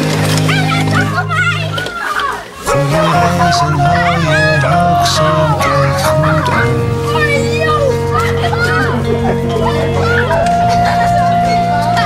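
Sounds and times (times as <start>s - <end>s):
song with steady bass line: 0.0s - 12.0s.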